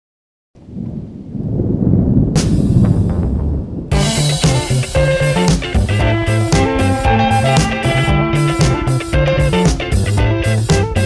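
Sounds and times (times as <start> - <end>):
deep rumble: 0.6 - 11.0.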